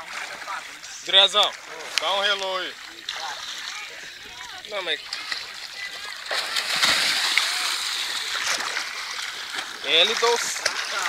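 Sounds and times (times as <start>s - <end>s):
churning splashing water: 0.0s - 11.0s
person splashing into water: 6.2s - 11.0s.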